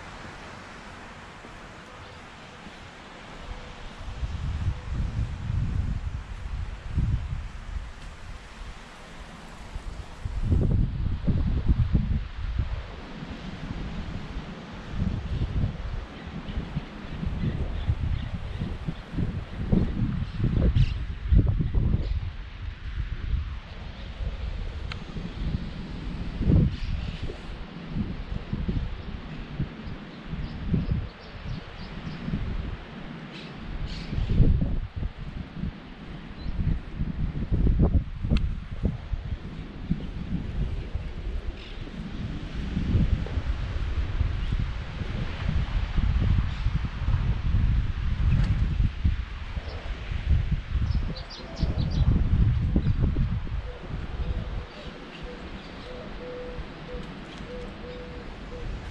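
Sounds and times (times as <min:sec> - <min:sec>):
wind buffeting microphone: 0:00.0 - 0:58.9.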